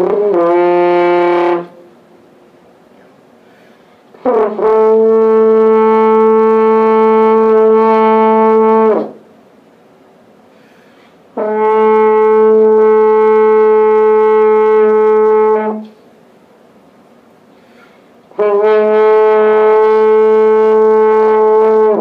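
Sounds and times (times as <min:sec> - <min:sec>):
french horn long held notes: 0:00.0 - 0:02.0, 0:04.1 - 0:09.2, 0:11.3 - 0:16.0, 0:18.2 - 0:22.0.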